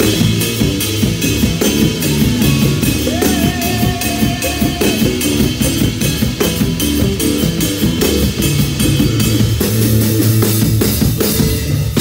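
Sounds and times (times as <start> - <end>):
drum kit beat with cymbals: 0.0 - 12.0
electric bass line: 0.0 - 12.0.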